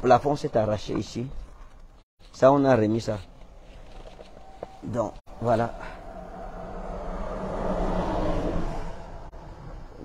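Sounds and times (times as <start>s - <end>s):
road vehicle passing by: 5.3s - 10.0s.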